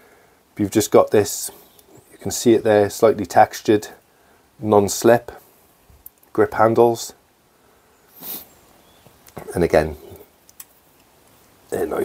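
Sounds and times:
person sniffing: 0:08.1 - 0:08.6.

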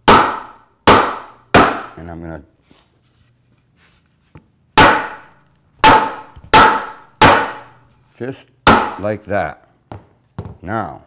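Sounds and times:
hammer striking wooden board: 0:00.0 - 0:02.0, 0:04.8 - 0:07.8, 0:08.6 - 0:09.1.

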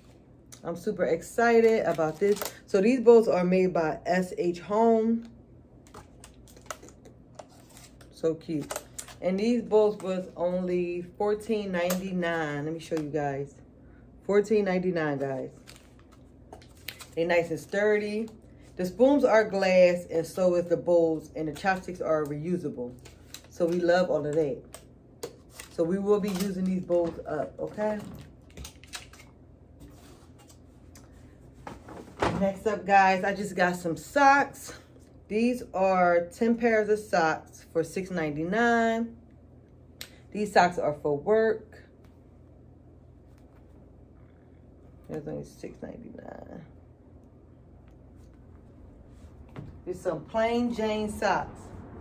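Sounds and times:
low room hum: 0:00.0 - 0:52.0.

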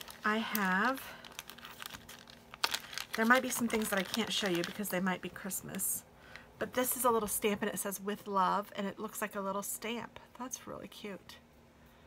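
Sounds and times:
plastic bag crackle: 0:00.0 - 0:05.8
plastic bag rustling: 0:00.0 - 0:05.9.

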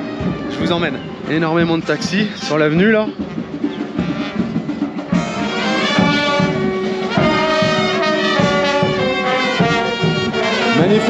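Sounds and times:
trumpets and trombones playing: 0:00.0 - 0:11.0.

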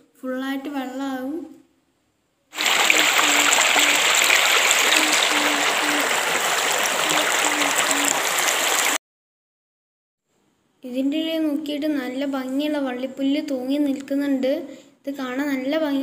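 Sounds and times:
water rushing over stones: 0:02.6 - 0:09.0.

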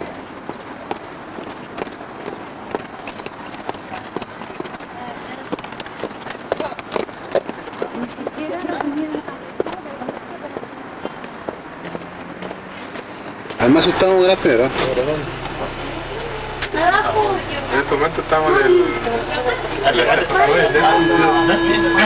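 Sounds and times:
footsteps on paved path: 0:00.0 - 0:13.8
indistinct voices of group: 0:14.7 - 0:22.0.

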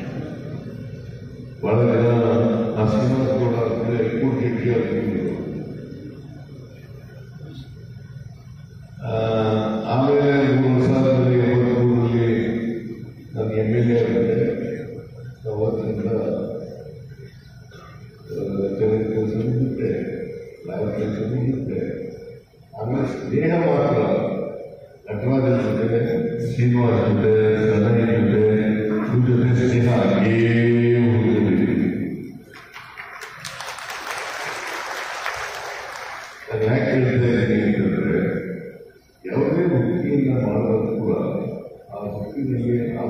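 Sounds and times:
man speaking over loudspeaker: 0:00.0 - 0:06.0, 0:09.0 - 0:32.4, 0:36.3 - 0:43.0
man chanting: 0:18.3 - 0:32.2, 0:36.5 - 0:43.0.

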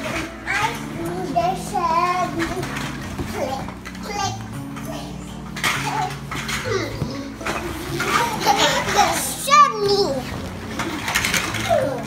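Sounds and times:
vinyl rubbing and rustling: 0:00.0 - 0:12.0.

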